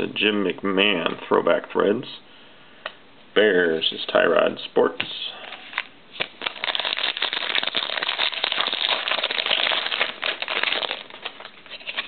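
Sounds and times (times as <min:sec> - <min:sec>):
foil wrapper crinkling: 0:05.8 - 0:12.0.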